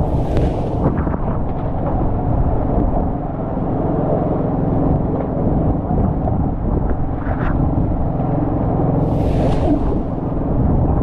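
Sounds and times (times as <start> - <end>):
boat engine rumbling: 0.0 - 11.0
wind and water rush: 0.0 - 11.0.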